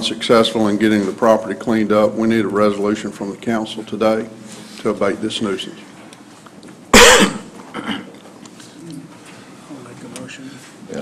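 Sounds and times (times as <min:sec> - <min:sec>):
person coughing: 0:06.9 - 0:08.2.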